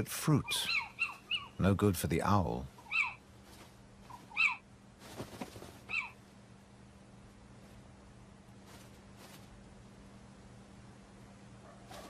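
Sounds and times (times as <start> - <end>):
owl giving high calls: 0.4 - 1.6, 2.8 - 3.2, 4.1 - 4.7, 5.8 - 6.2.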